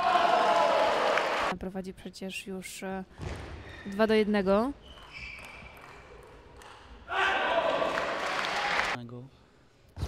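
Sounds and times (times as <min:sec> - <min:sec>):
spectators cheering and shouting: 0:00.0 - 0:01.5.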